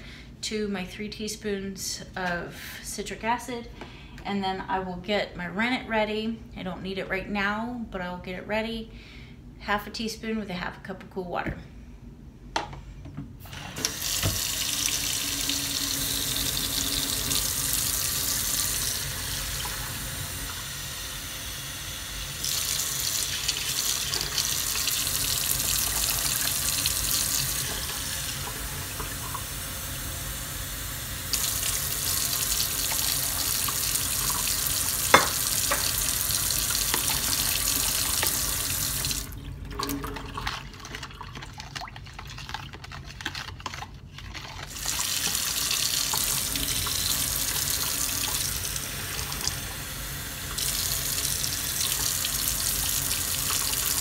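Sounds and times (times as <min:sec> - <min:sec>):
measuring cup filling with water: 0:13.5 - 0:20.6, 0:44.7 - 0:49.6
tap running into steel sink: 0:13.8 - 0:14.5, 0:35.1 - 0:36.0.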